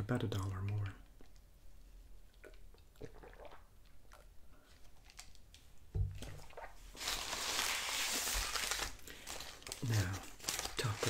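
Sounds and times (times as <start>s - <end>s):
person swallowing: 2.3s - 3.7s
paper wrapper crinkling: 4.9s - 5.6s, 6.9s - 11.0s.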